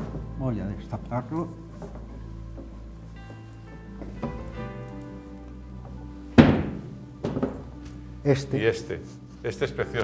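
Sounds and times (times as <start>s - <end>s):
soft background music: 0.0s - 10.0s
framed painting thunk: 6.4s - 7.8s.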